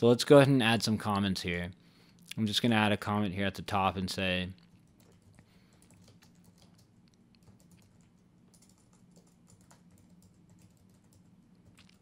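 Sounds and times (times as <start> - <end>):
typing on computer keyboard: 4.8 - 12.0.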